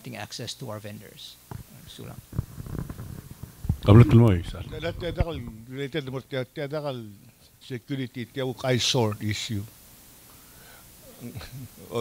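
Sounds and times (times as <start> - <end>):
indistinct voices through microphone: 1.5 - 5.7
man speaking loudly: 3.9 - 6.8.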